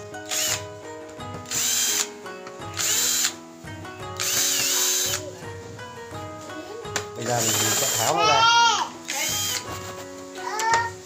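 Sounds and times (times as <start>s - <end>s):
cordless drill motor whine: 0.3s - 0.6s, 1.5s - 2.1s, 2.8s - 3.3s, 4.2s - 5.2s, 7.4s - 8.2s, 9.1s - 9.7s.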